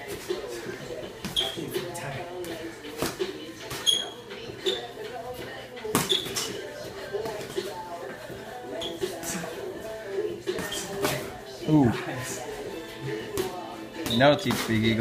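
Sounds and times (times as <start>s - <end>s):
sneakers squeaking on hard floor: 1.2s - 9.5s, 10.4s - 11.4s, 13.3s - 15.0s
boxing gloves smacking: 2.4s - 3.8s, 5.9s - 6.6s, 10.5s - 11.4s, 13.2s - 15.0s.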